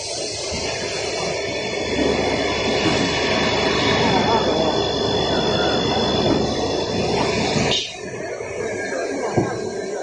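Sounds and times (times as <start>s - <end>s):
mechanical rumble: 0.2s - 10.0s
router spindle whine: 0.5s - 10.0s.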